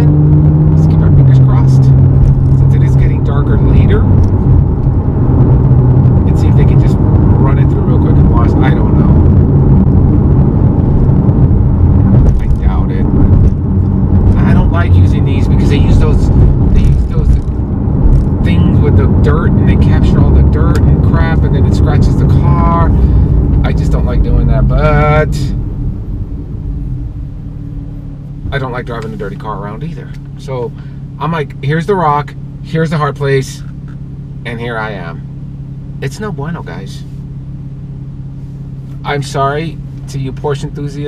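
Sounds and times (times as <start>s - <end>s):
car engine drone: 0.0s - 41.0s
road noise: 0.0s - 41.0s
man talking: 0.8s - 4.2s, 6.2s - 9.3s, 12.3s - 13.1s, 14.3s - 17.5s, 18.4s - 25.6s, 28.5s - 33.7s, 34.5s - 35.2s, 36.0s - 37.1s, 39.0s - 41.0s.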